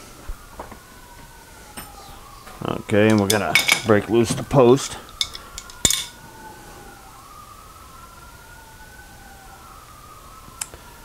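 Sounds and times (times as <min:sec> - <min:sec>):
faint high rising and falling tone: 0:00.9 - 0:11.0.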